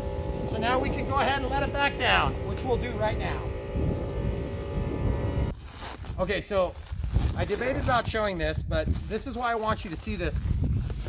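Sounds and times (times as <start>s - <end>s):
engine running: 0.0s - 5.6s
wind rumbling on microphone: 0.0s - 11.0s.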